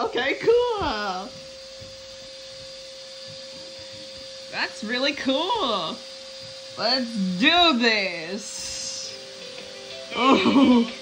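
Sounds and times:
steady electronic hum: 0:00.0 - 0:11.0.

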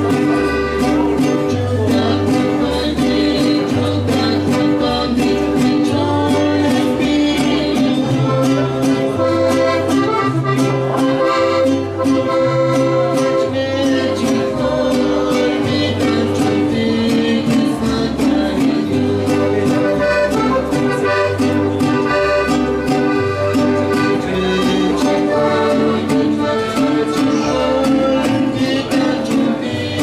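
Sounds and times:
strummed guitars: 0:00.0 - 0:30.0.

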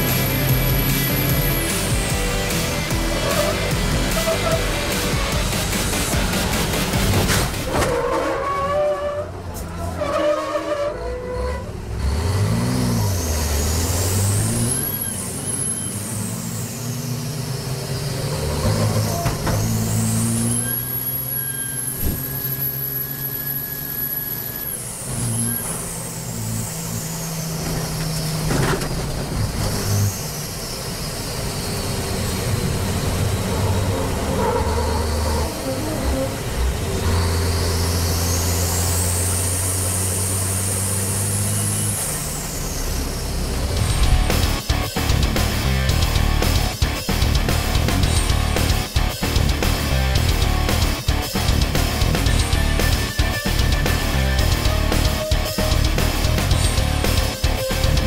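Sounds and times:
truck engine under load: 0:00.0 - 0:58.0
high whistle: 0:14.7 - 0:16.2, 0:20.3 - 0:25.8.

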